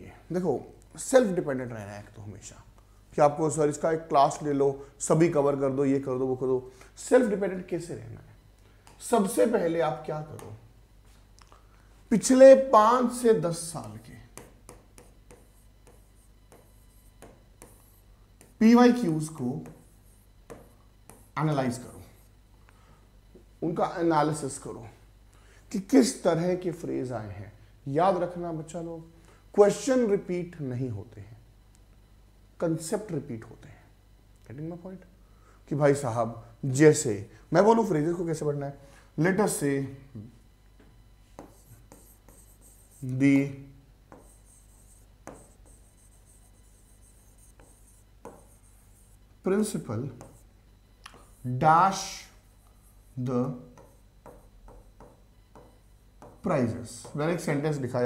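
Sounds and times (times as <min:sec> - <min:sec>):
marker pen writing on whiteboard: 0:10.2 - 0:10.6, 0:13.5 - 0:22.3, 0:41.3 - 0:43.3, 0:44.1 - 0:49.2, 0:50.1 - 0:50.5, 0:51.1 - 0:57.6.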